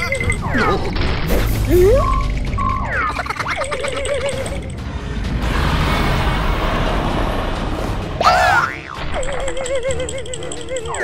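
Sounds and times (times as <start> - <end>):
dense rushing noise: 5.0 - 8.2.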